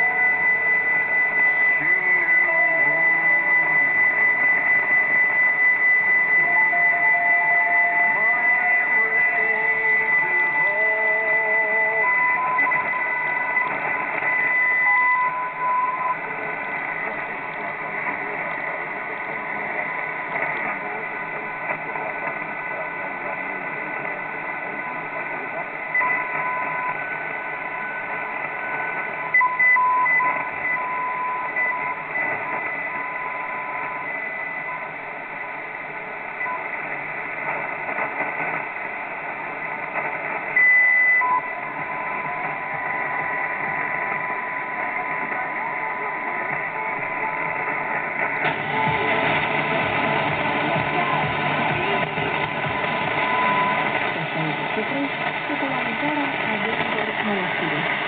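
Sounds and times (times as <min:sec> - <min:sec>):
radio static hiss: 0:00.0 - 0:58.0
radio carrier whistles: 0:39.6 - 0:50.2.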